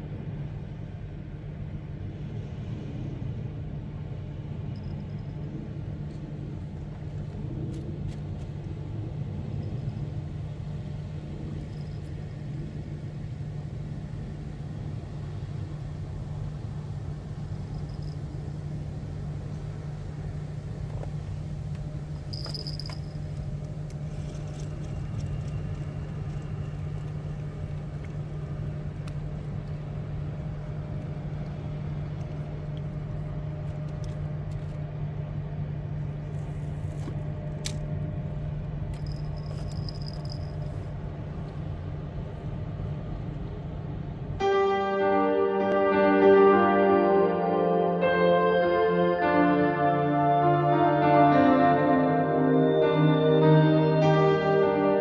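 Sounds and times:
low engine drone: 0.0 - 55.0.

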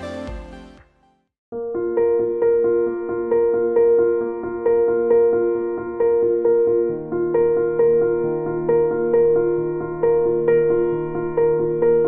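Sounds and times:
slow gentle piano music: 0.0 - 12.0.

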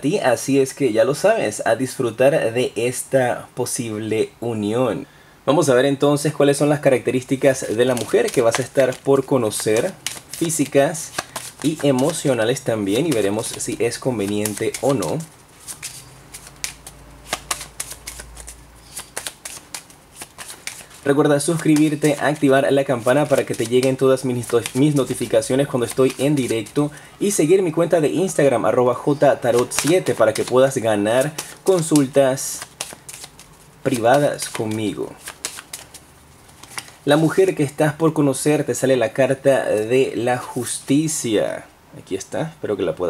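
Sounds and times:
cards shuffled by hand: 7.4 - 26.9, 29.4 - 37.4.

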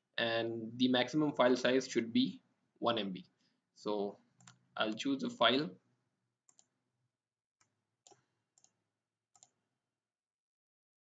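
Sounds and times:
computer mouse clicks: 4.4 - 5.1, 6.5 - 6.7, 7.6 - 9.6.

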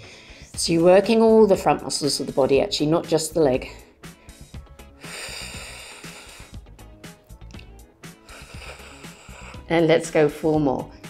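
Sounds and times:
soft background music: 0.0 - 11.0
woman breathing out: 3.8 - 6.8, 8.1 - 9.7.

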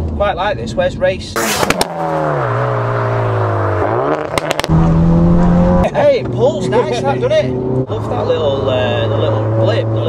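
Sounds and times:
exhaust crackles: 1.4 - 6.6
car engine revving: 1.4 - 10.0.

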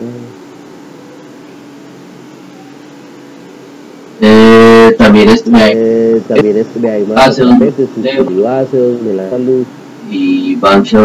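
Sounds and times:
man saying long ehh: 0.0 - 0.4, 4.2 - 6.5
faint steady line hum: 0.0 - 11.0.

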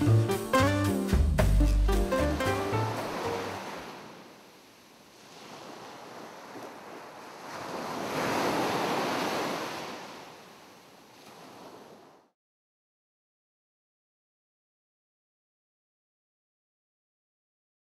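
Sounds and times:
music: 0.0 - 3.6
ocean wave washing in: 2.0 - 12.1.

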